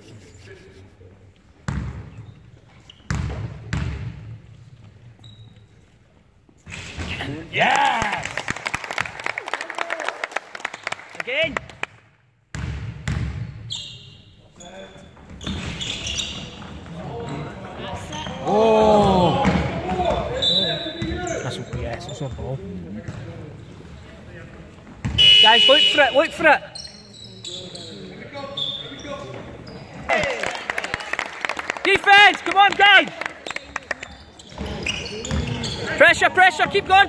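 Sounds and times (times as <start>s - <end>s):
shoe squeaks: 2.1s - 3.4s, 5.1s - 6.0s, 13.4s - 18.5s, 20.3s - 22.4s, 25.0s - 30.2s, 33.5s - 36.2s.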